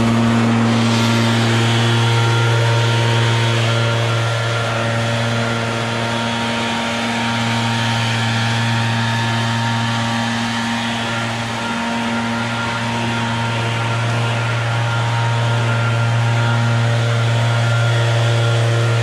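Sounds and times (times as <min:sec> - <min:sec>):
leaf blower engine drone: 0:00.0 - 0:19.0.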